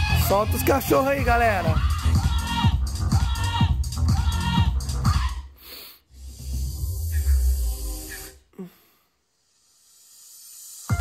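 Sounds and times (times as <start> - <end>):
electronic dance music: 0.0 - 5.5, 10.5 - 11.0
faint hiss: 8.1 - 11.0.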